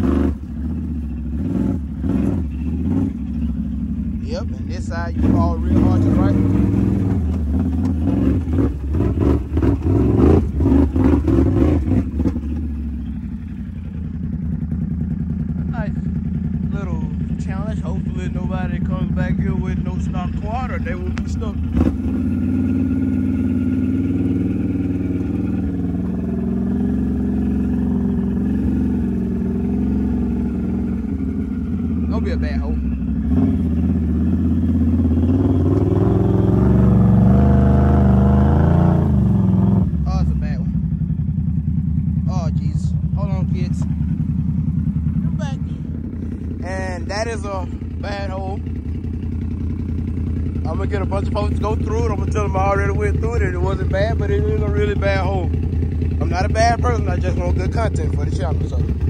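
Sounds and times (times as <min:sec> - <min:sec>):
atv engine revving: 0:00.0 - 0:59.0.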